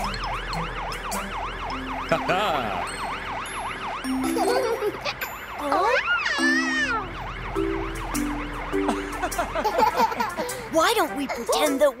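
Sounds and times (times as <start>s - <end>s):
cartoon fire engine siren: 0.0s - 10.2s.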